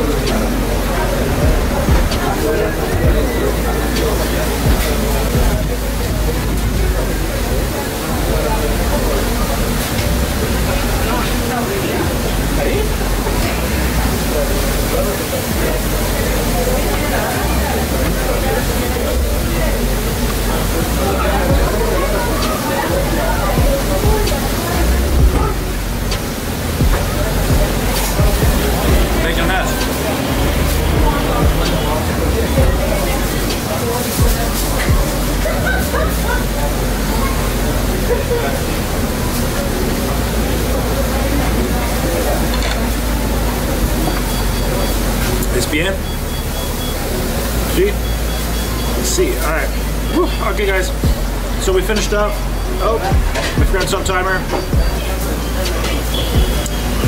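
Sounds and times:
strong low rumble: 0.0 - 22.4, 23.0 - 33.6, 50.9 - 53.8
background music: 0.0 - 41.2
indistinct voices: 0.0 - 57.0
street noise: 0.0 - 57.0.

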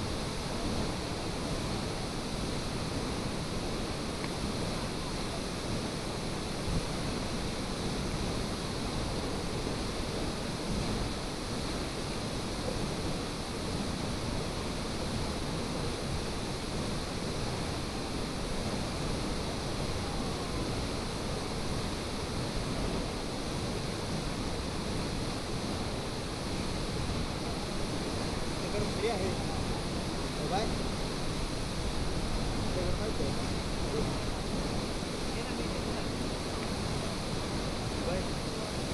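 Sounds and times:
waterfall rushing: 0.0 - 38.9.

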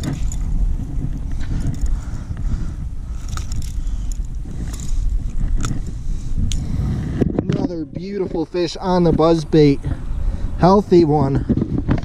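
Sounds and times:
low rumbling wind: 0.0 - 12.0.

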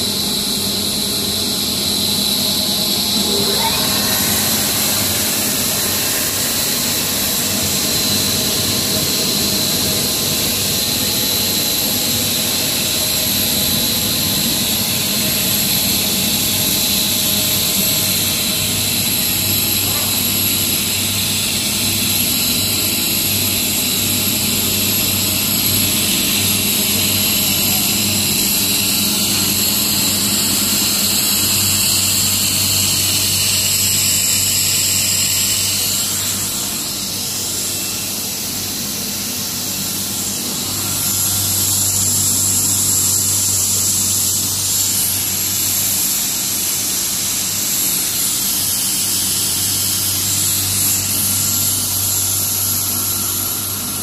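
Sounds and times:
loud machine noise: 0.0 - 54.0
high whining tones: 2.6 - 8.8.

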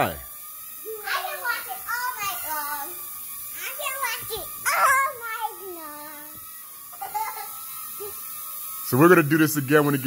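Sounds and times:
toy drone propeller whine: 0.0 - 10.0
child's drawn-out voice: 0.8 - 3.0, 3.6 - 6.4.

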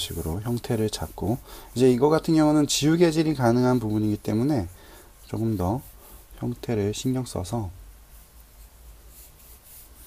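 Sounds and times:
pencil scratching on paper: 0.0 - 10.0.

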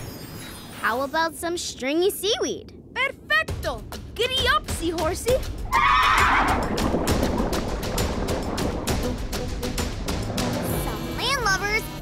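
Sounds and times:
cartoon horse-like whinny: 5.7 - 6.6.

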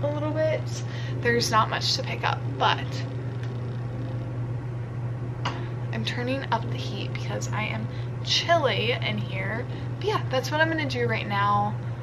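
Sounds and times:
appliance humming: 0.0 - 12.0.

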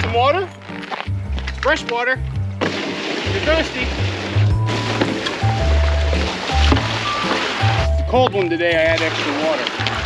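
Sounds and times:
music with deep bass line: 2.2 - 10.0
water pouring into rubber tub: 2.6 - 10.0.

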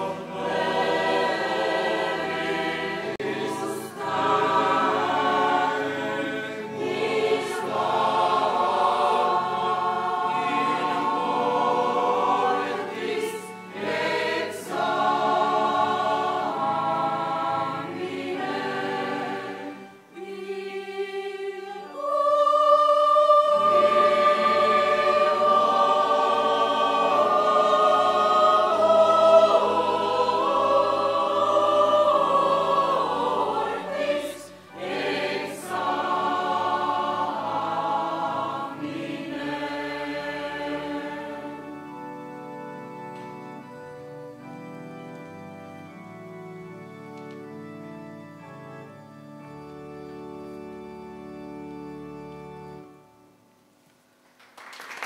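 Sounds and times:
mixed choir singing: 0.0 - 42.0.

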